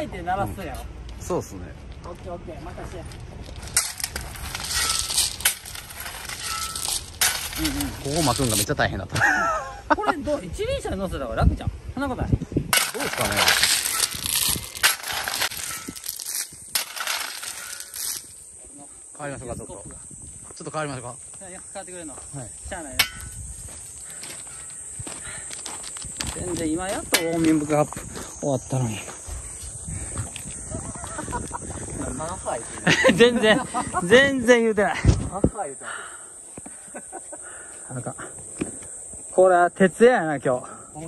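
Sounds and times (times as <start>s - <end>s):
stones rattling: 3.4s - 8.7s, 12.8s - 18.3s
shovel scraping into gravel: 3.6s - 8.7s, 12.8s - 18.3s
high-pitched insect drone: 17.3s - 41.0s.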